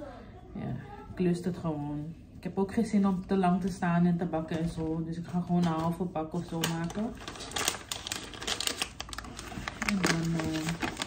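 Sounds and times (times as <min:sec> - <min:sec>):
paper packet crinkling: 0:05.9 - 0:11.0.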